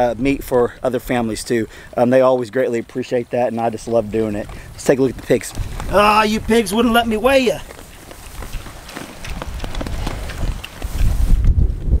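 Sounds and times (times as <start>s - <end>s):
pigs crunching corn: 0.0s - 11.4s
wind rumble on microphone: 3.9s - 12.0s.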